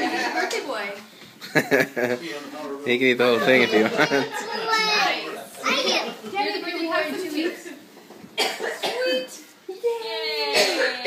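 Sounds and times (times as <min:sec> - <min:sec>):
short cough: 0:08.4 - 0:09.1, 0:10.5 - 0:11.0.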